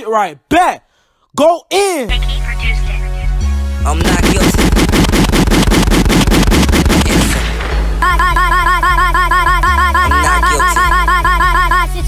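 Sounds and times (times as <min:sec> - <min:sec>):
booming bass notes: 0:03.9 - 0:11.7
fast sharp hits: 0:04.0 - 0:08.7
deep bass: 0:07.0 - 0:12.0
synth melody: 0:08.0 - 0:12.0.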